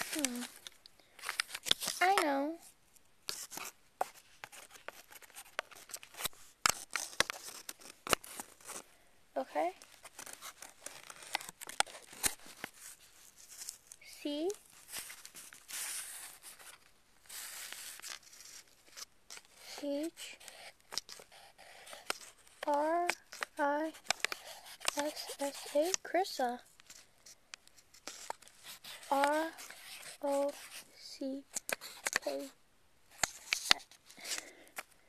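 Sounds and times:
pencil scratching on paper: 0:19.3 - 0:26.6, 0:28.0 - 0:32.6.

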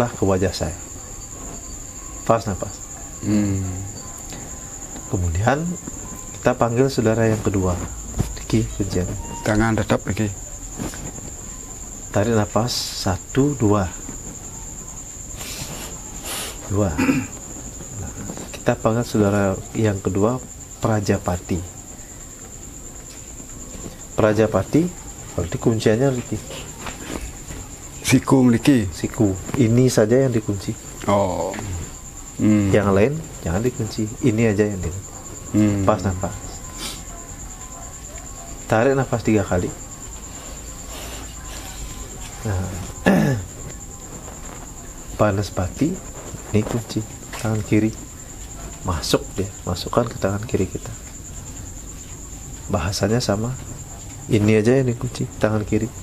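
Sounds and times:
crickets trilling: 0:00.0 - 0:56.0
faint high whine: 0:00.0 - 0:56.0.

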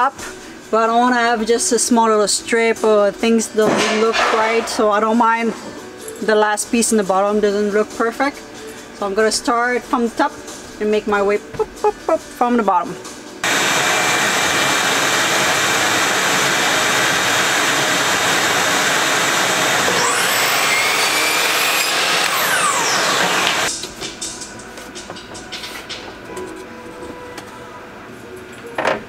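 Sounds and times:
dust extraction vacuum whirring: 0:13.4 - 0:23.7
miter saw blade whine: 0:13.4 - 0:23.7.

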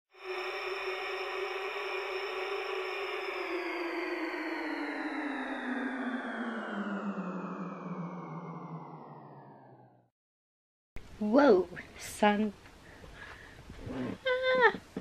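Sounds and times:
buzzy drone sliding down in pitch: 0:00.1 - 0:10.1.

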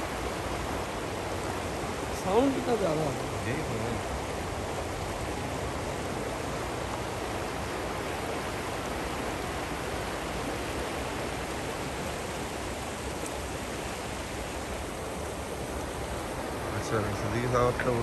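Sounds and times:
river rushing over stones: 0:00.0 - 0:18.0.

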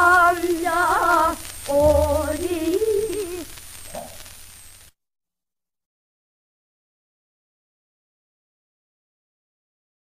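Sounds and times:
women singing folk song: 0:00.0 - 0:03.5
record surface hiss: 0:00.0 - 0:05.0.

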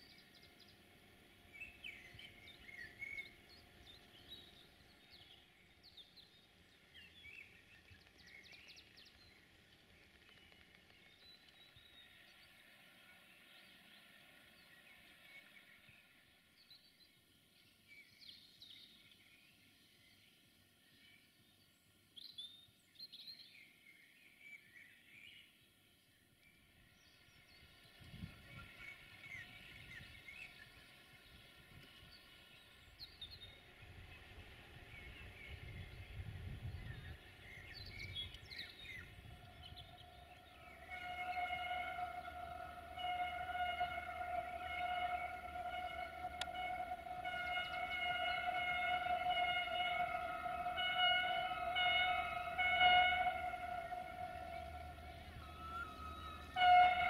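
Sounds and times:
birds chirping: 0:26.5 - 0:57.0
steady pitched tone: 0:33.0 - 0:57.0.

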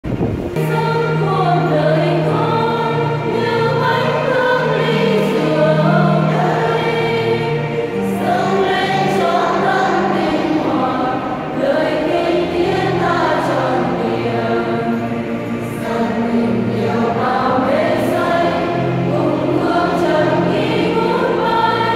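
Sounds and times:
women's choir singing a hymn: 0:00.4 - 0:21.9.

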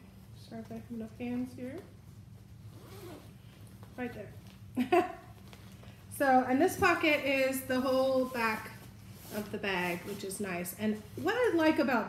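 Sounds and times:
zipper rasp: 0:02.6 - 0:03.4.

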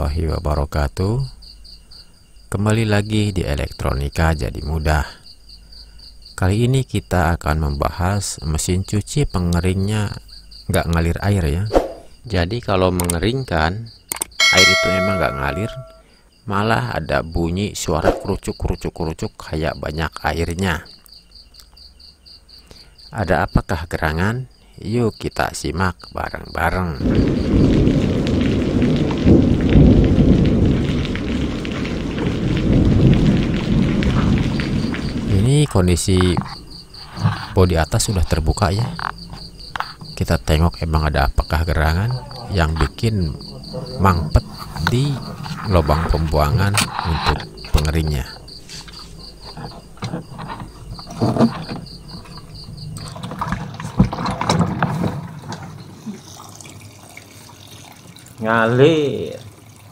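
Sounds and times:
sharp knocks: 0:14.4 - 0:16.0
deep rumble with crackling: 0:27.0 - 0:35.5
water gurgling in a drain: 0:52.2 - 0:59.9.

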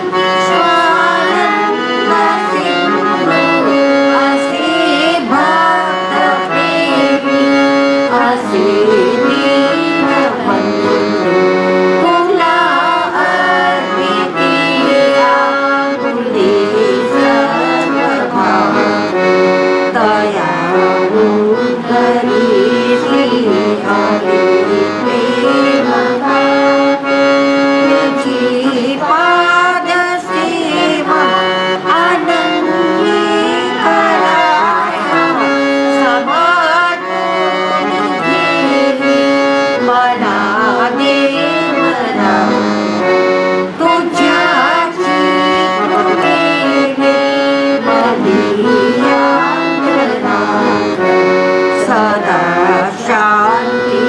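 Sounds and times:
harmonium devotional melody: 0:00.0 - 0:54.0.

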